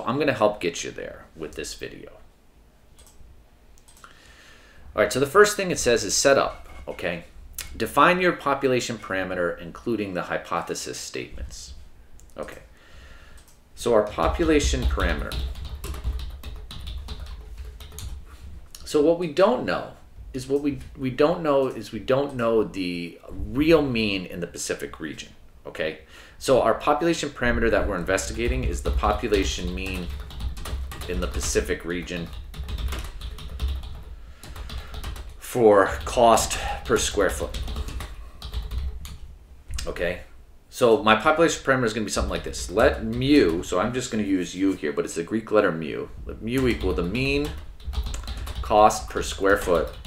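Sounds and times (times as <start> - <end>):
low steady hum: 0.0 - 50.0
keyboard typing: 3.0 - 3.2, 13.4 - 18.2, 28.2 - 35.4, 36.0 - 39.2, 46.6 - 50.0.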